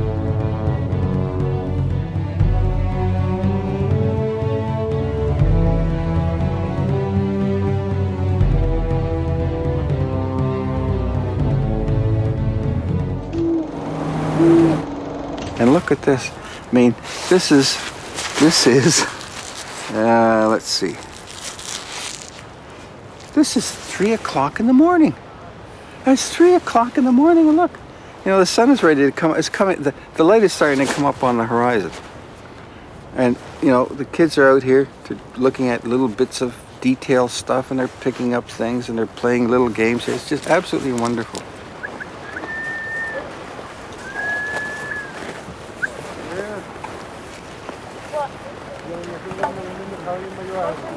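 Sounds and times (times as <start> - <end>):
high whistled note: 13.1 - 16.5, 42.2 - 43.3, 44.0 - 46.0
soft steady hiss: 13.2 - 50.9
clothing rustle: 17.0 - 24.2, 43.3 - 50.9.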